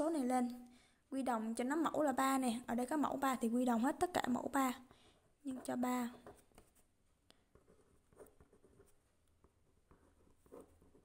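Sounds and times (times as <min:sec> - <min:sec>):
pen scratching on paper: 0:06.1 - 0:06.9, 0:07.5 - 0:11.0.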